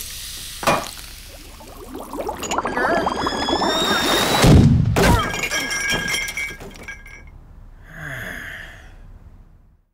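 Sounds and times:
ceramic cups clinking and rattling: 0:05.2 - 0:07.3
ceramic ringing: 0:05.2 - 0:07.3.

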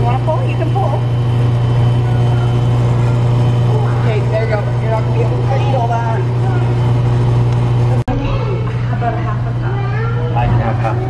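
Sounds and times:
frozen yogurt machine humming: 0:00.0 - 0:11.0
faint voices: 0:01.8 - 0:11.0.

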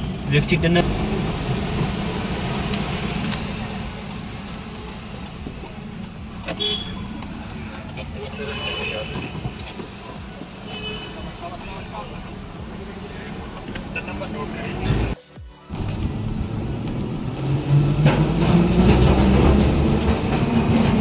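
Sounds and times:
car road and engine rumble: 0:00.0 - 0:21.0
voices: 0:00.3 - 0:18.0
car horn toots: 0:06.5 - 0:07.2, 0:08.1 - 0:09.8, 0:10.6 - 0:11.5.

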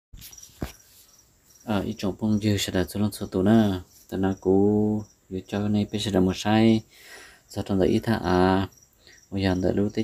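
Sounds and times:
high-pitched insect chirps: 0:00.2 - 0:06.6, 0:08.2 - 0:10.0
man speaking: 0:01.6 - 0:10.0.

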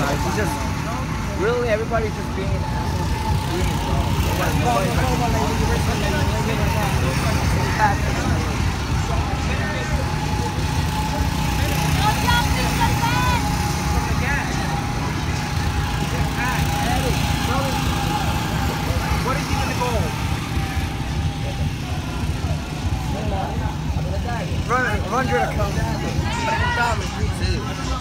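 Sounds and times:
go-kart engines running: 0:00.0 - 0:28.0
voices calling out: 0:00.0 - 0:28.0.

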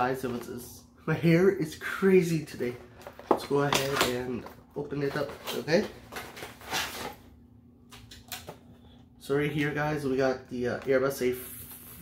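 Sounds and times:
cardboard packaging rustling: 0:02.6 - 0:07.3.

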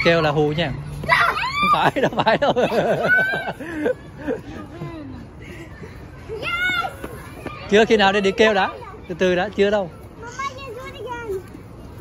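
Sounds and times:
young children talking and calling: 0:00.0 - 0:12.0.

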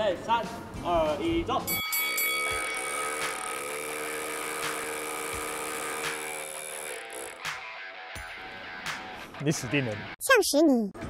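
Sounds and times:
background music: 0:00.0 - 0:11.0
rotary hammers drilling concrete: 0:02.1 - 0:08.4.

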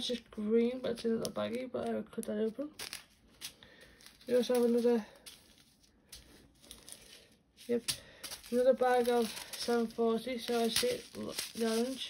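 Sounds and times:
plastic bags crinkling: 0:02.5 - 0:12.0.

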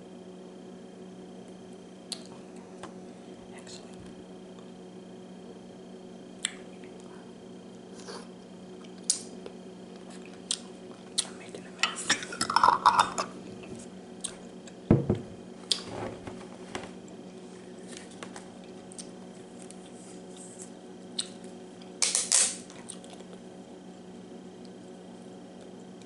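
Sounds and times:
faint low hum: 0:01.4 - 0:22.0
dull knock on table: 0:14.9 - 0:15.4.

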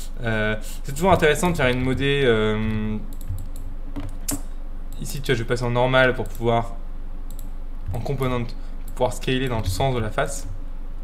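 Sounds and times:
faint low hum: 0:00.0 - 0:11.0
keystrokes on computer keyboard: 0:02.6 - 0:04.5.

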